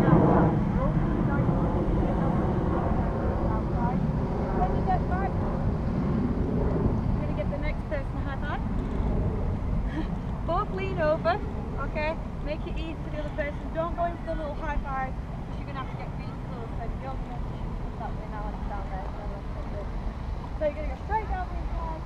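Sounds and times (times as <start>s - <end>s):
distant indistinct voices: 0.0s - 22.0s
steady low rumble: 0.0s - 22.0s.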